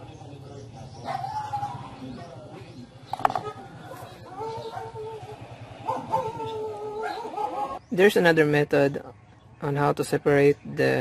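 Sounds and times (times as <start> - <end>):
dog howling: 1.0 - 2.0, 3.4 - 7.8.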